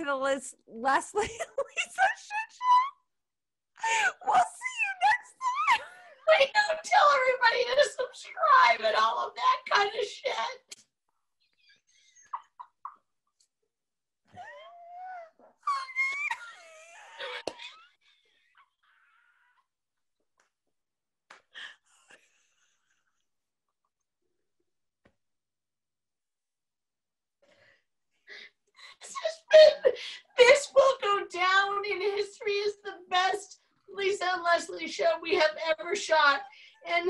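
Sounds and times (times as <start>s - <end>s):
women's high-pitched laughter: 1.2s - 3.0s.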